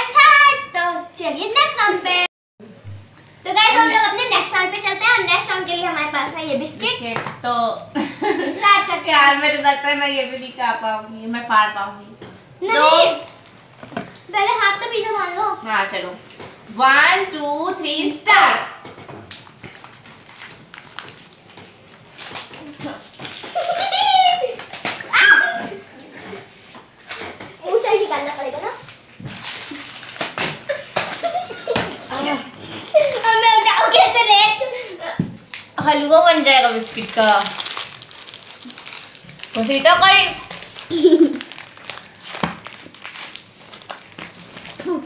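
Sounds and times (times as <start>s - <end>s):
plastic wrapper crinkling: 13.2s - 14.3s, 19.3s - 25.1s, 27.0s - 31.6s, 32.6s - 34.4s, 35.4s - 45.0s
girls whining and squealing: 23.6s - 26.1s.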